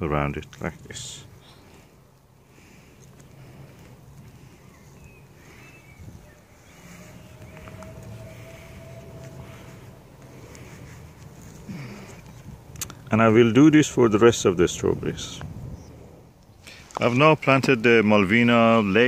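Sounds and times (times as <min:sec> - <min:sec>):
low steady hum: 0:00.0 - 0:19.0
soil rustling under hand: 0:00.2 - 0:13.3.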